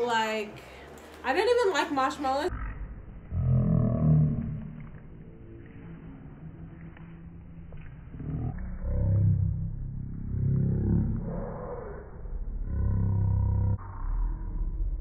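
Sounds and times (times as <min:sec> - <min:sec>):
low rough roaring: 0:00.0 - 0:15.0.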